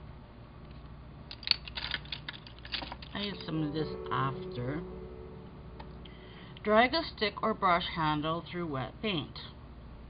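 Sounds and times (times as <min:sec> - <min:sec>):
wooden pencils clicking together: 0:01.3 - 0:03.4.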